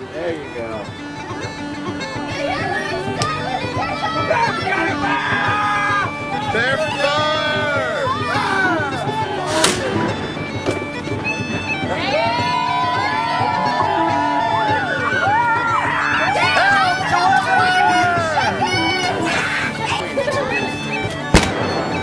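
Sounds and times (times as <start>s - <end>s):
bagpipe music: 0.0s - 22.0s
sharp crack: 9.5s - 10.8s, 21.3s - 22.0s.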